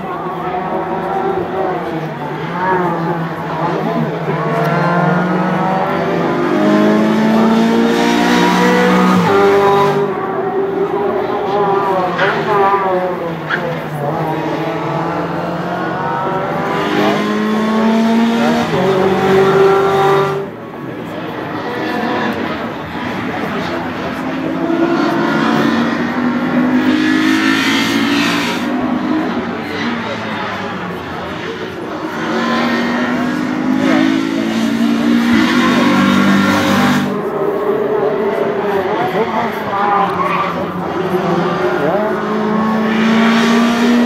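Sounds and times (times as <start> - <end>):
racing cars accelerating past: 0.0 - 44.0.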